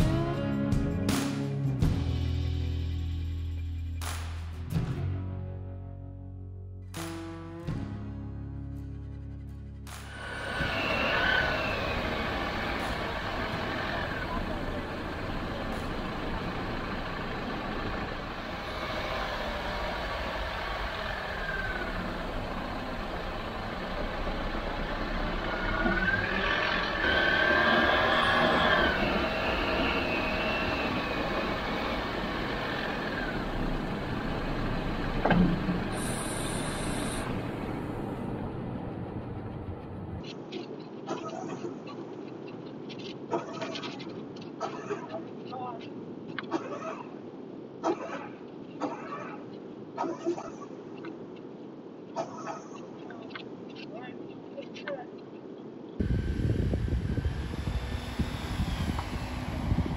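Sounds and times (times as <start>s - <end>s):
engine running: 7.0s - 40.4s, 56.0s - 59.9s
squeals and creaks: 10.1s - 14.5s.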